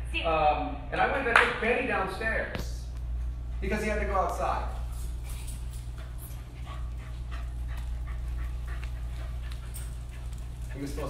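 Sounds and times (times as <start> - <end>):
dog claws ticking on floor: 4.3 - 11.0.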